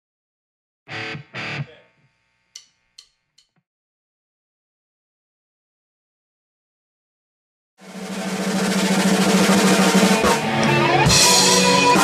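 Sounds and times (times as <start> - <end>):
rock band electric guitar chords: 0.9 - 1.8, 8.4 - 12.0.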